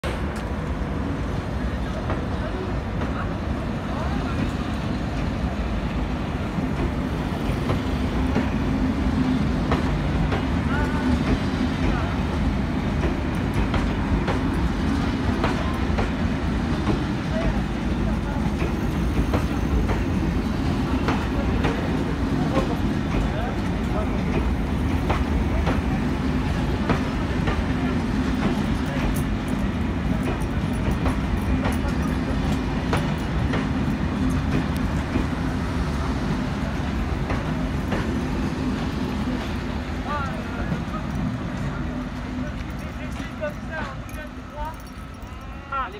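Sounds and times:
train wheels rumbling on track: 0.0s - 45.9s.

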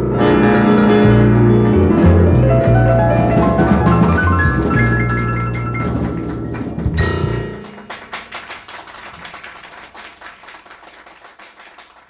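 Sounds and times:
audience applause: 3.4s - 7.0s, 7.6s - 12.0s.

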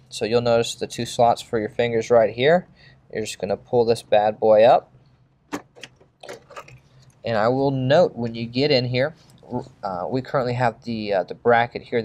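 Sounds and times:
plastic and metal rattling: 5.5s - 6.8s.

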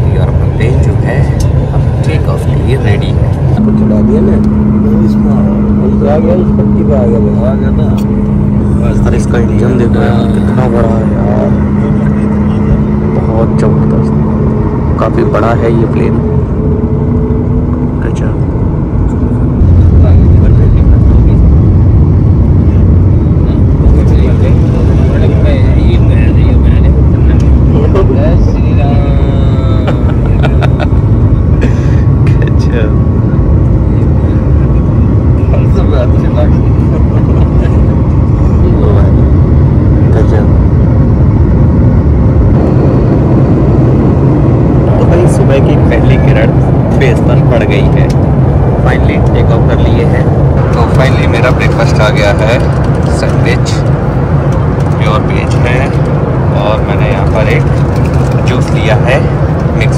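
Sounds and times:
jet engines rumbling at takeoff: 0.0s - 59.9s.

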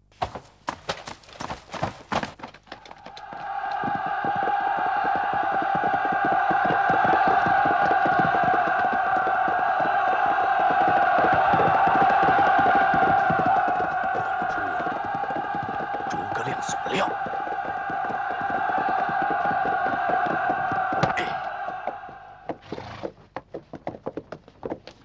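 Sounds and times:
rapid drumming or trampling: 0.0s - 22.6s
crowd of voices shouting: 2.8s - 22.6s.

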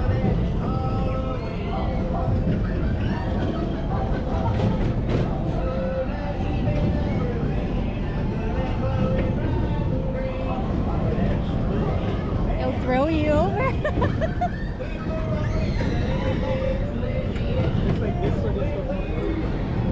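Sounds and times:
country music with singing: 0.0s - 19.9s
low rumble of moving ride: 0.0s - 19.9s.

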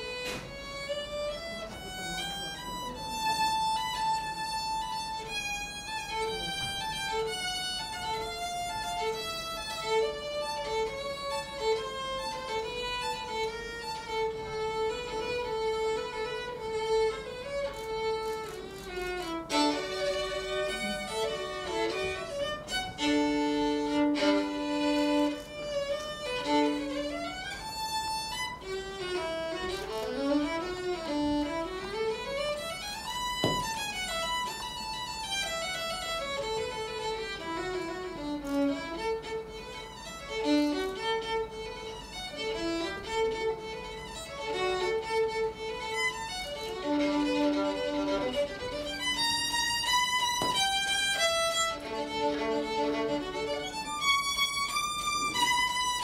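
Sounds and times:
solo violin melody: 0.0s - 56.0s.

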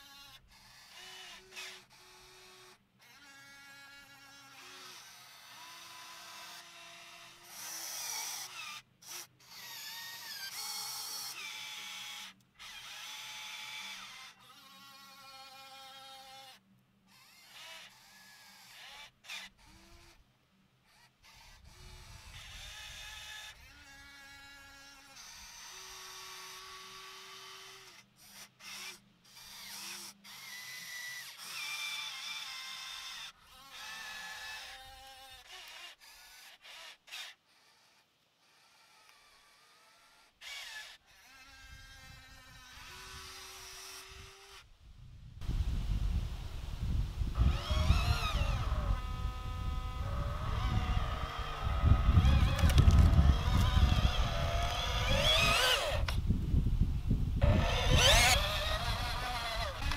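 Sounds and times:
electric motors whining: 20.8s - 44.7s, 45.4s - 59.9s.

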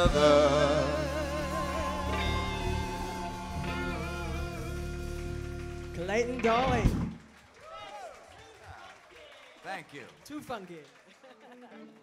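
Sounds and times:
band playing final chord: 0.0s - 7.0s.

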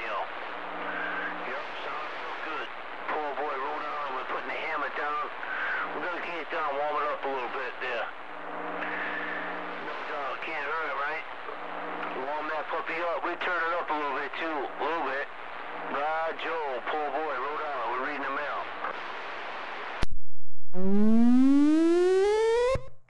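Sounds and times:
radio static hiss: 0.0s - 20.1s
low carrier tone: 20.0s - 23.0s.

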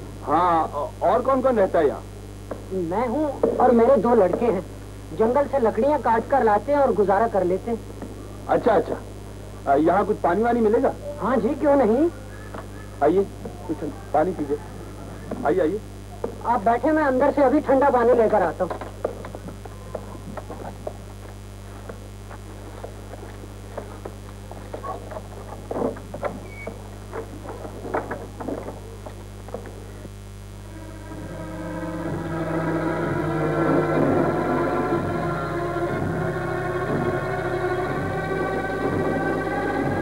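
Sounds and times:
low film hum: 0.0s - 40.0s
string and organ chords: 30.6s - 40.0s.

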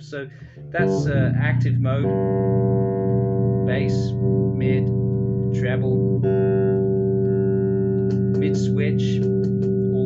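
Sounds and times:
electric bass note ringing: 0.5s - 10.0s.

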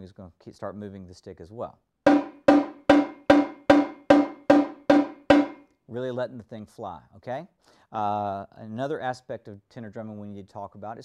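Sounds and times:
tenor drum struck with sticks: 2.1s - 5.6s.

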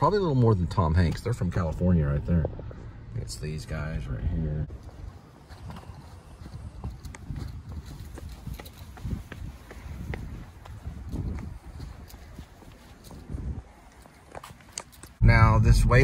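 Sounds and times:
footsteps on concrete: 4.8s - 15.2s.

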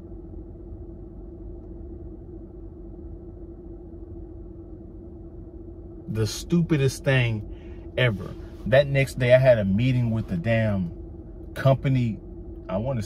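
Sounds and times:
car engine idling: 0.1s - 13.0s.

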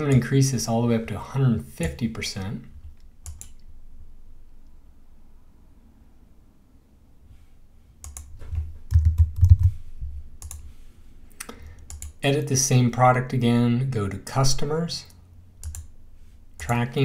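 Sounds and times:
computer mouse click: 2.9s - 3.7s, 8.0s - 9.7s, 10.4s - 10.7s, 11.4s - 12.2s, 15.6s - 15.9s.

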